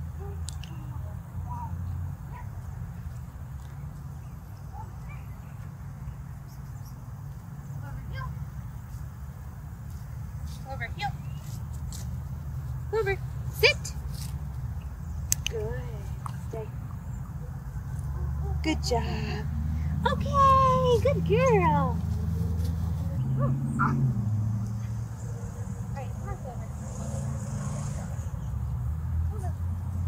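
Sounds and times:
woman speaking: 12.9s - 14.0s, 18.2s - 22.0s
sharp clicks: 15.2s - 16.4s.

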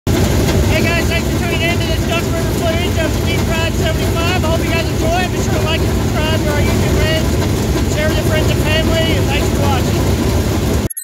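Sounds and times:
race car engines rumbling: 0.1s - 10.9s
man's voice: 0.7s - 10.1s.

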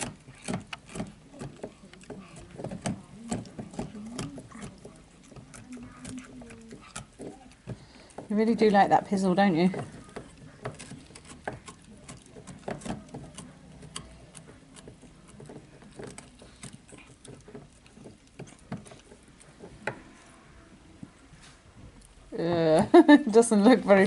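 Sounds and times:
puppy gnawing on a chew: 0.0s - 22.4s.

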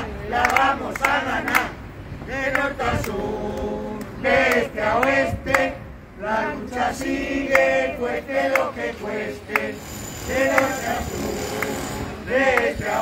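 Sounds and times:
group chanting slogan: 0.0s - 13.0s.

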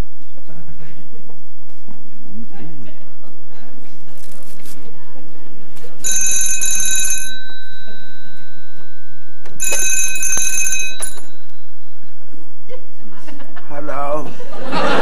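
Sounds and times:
telephone bell ringing: 6.0s - 12.0s.

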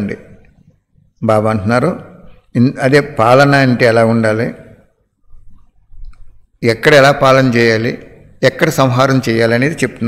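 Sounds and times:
man speaking: 0.0s - 4.9s, 6.5s - 10.0s.

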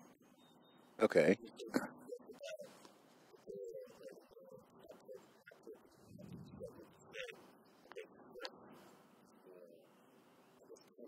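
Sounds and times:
dove cooing: 1.6s - 10.0s.

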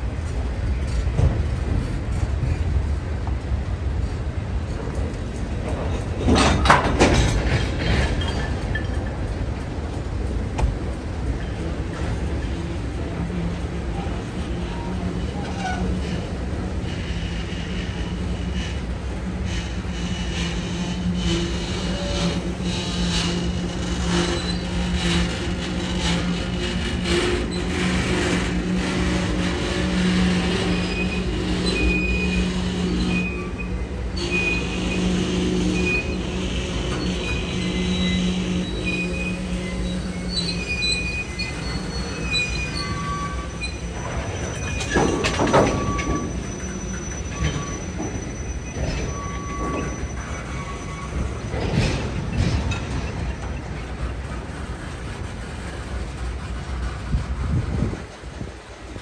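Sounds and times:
steel wheels rumbling on rail: 0.0s - 59.0s
high wheel squeals: 19.6s - 53.8s.

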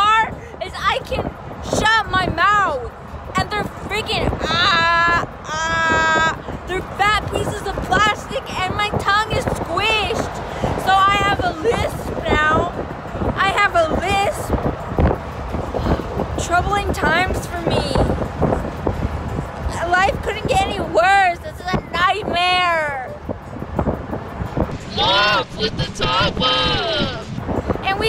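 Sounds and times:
woman's high-pitched voice: 0.0s - 12.7s, 13.4s - 14.5s, 16.4s - 18.1s, 19.7s - 23.2s
wind buffeting microphone: 0.0s - 28.0s.

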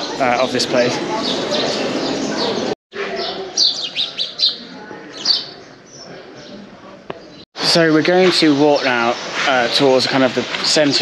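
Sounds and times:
small birds chirping: 0.0s - 7.4s.

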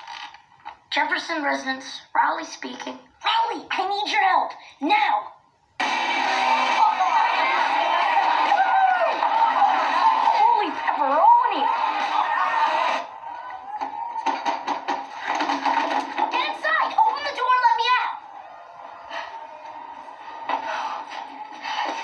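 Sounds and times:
boy speaking: 0.9s - 5.4s, 16.3s - 18.2s
crowd talking and shouting: 5.8s - 22.0s.

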